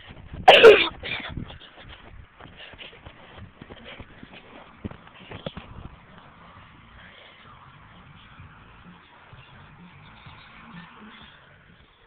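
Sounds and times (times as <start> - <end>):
soft thumps and clicks: 2.1 - 6.3.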